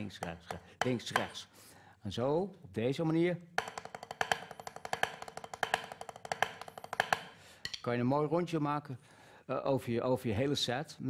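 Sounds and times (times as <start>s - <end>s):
drumsticks rolling on a practice pad: 0.0s - 1.4s, 3.6s - 7.8s.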